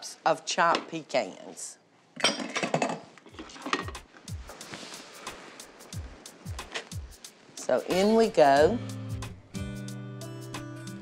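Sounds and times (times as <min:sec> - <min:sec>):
utensils and dishes clinking: 0:02.2 - 0:04.1
faint background music: 0:03.3 - 0:11.0.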